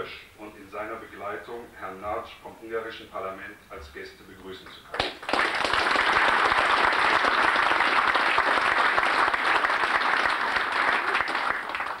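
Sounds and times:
audience applauding: 4.9s - 12.0s.

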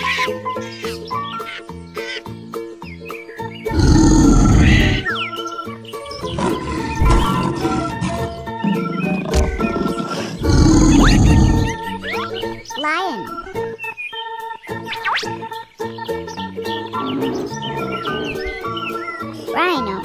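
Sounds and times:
children's background music: 0.0s - 20.0s
lion roars: 3.7s - 5.1s, 6.2s - 8.6s, 9.2s - 11.9s.

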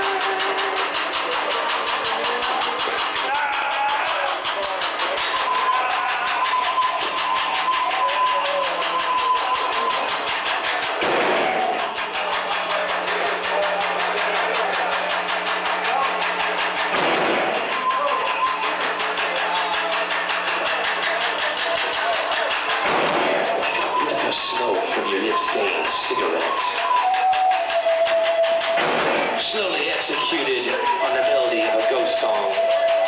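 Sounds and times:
live band playing experimental rock: 0.0s - 33.0s.

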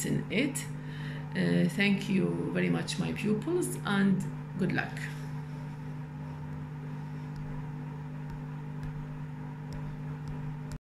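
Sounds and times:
low machine hum: 0.0s - 10.8s.

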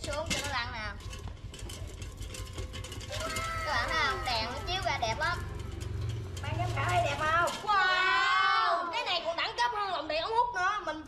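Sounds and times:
tin can lantern rolling on tiles: 0.0s - 10.2s.

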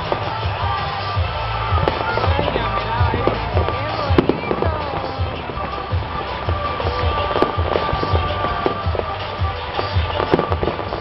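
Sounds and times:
fireworks bangs and crackle: 0.0s - 11.0s
music with bass beat: 0.0s - 11.0s.

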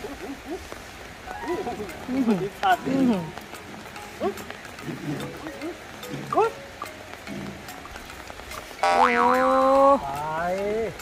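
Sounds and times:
springy boing sweeps: 8.8s - 9.4s.

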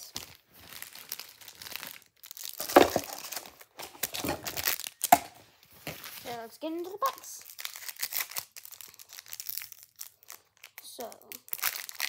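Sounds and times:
foil packs crinkling and rustling: 0.0s - 12.0s.

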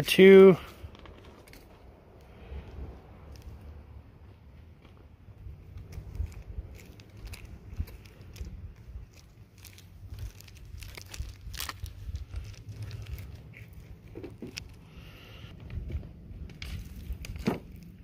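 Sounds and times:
low rumble: 0.7s - 18.0s
gloves rustling on rocks: 5.6s - 18.0s.

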